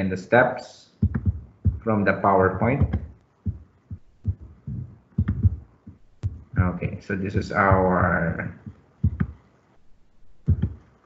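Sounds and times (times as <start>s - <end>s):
soft dull thumps: 1.0s - 1.9s, 2.6s - 9.4s, 10.3s - 10.9s.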